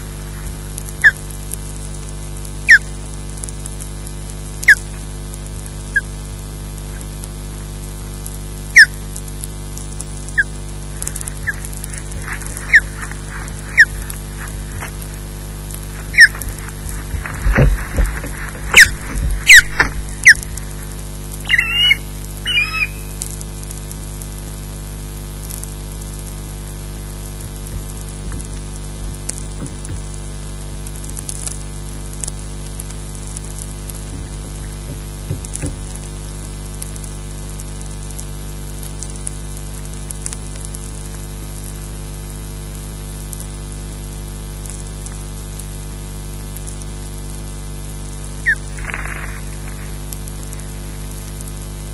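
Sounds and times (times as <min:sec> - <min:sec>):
steady hum: 0:00.0 - 0:51.9
faint ticks: 0:00.2 - 0:22.2, 0:22.8 - 0:41.8, 0:48.0 - 0:51.9
loud wingbeats: 0:10.3 - 0:23.2, 0:33.6 - 0:36.2, 0:48.4 - 0:51.9
short high bird calls: 0:11.3 - 0:15.2, 0:15.9 - 0:20.8, 0:21.4 - 0:23.2, 0:48.4 - 0:50.0.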